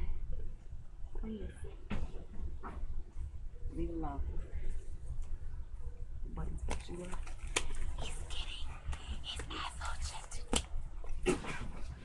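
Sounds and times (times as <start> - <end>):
low steady hum: 0.0 - 12.0
whispered voices: 3.6 - 12.0.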